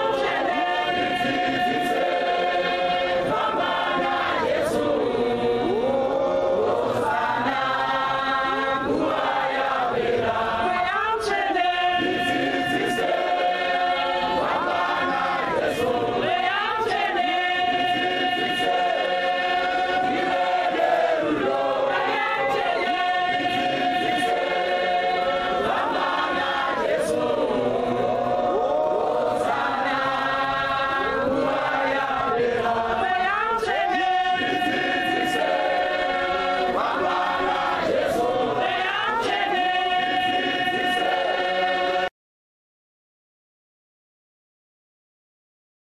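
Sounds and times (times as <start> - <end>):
choir singing: 0.0 - 42.1.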